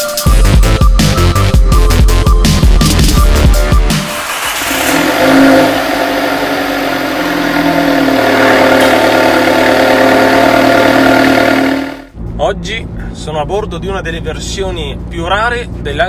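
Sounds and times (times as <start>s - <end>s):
car engine idling: 3.5s - 12.1s.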